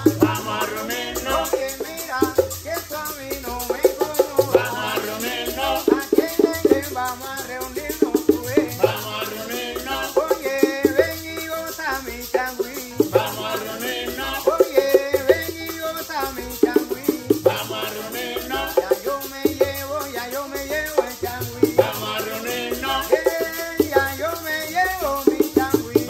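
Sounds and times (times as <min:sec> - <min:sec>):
bongos: 0:00.0 - 0:26.0
maracas shaking: 0:00.0 - 0:26.0.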